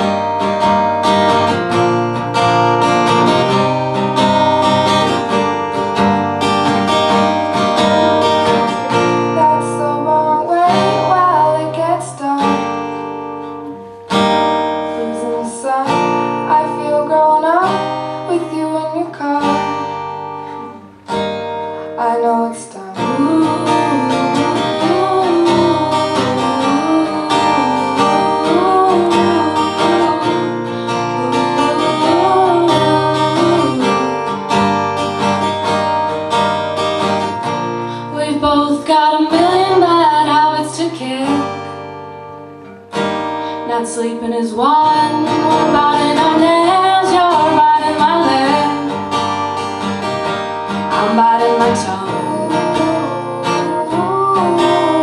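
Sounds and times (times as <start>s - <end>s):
acoustic guitar strumming: 0.0s - 55.0s
woman singing: 6.6s - 13.8s, 14.6s - 21.0s, 21.8s - 35.4s, 37.7s - 41.9s, 43.5s - 49.4s, 50.7s - 55.0s.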